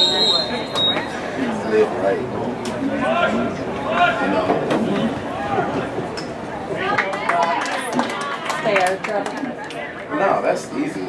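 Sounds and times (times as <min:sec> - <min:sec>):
people talking: 0:06.6 - 0:11.0.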